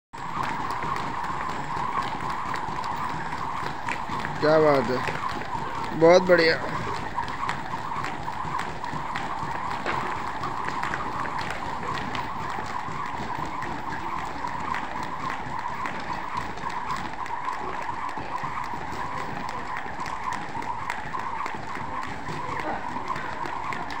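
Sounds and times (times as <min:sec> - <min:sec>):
feet landing: 0:00.2 - 0:24.0
jump ropes slapping floor: 0:00.2 - 0:24.0
rope whirring: 0:00.2 - 0:24.0.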